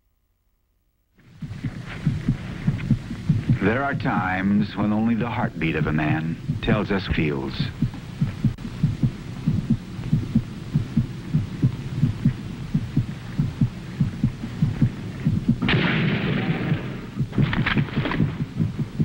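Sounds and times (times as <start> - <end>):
amplified heartbeat: 1.2 - 19.0.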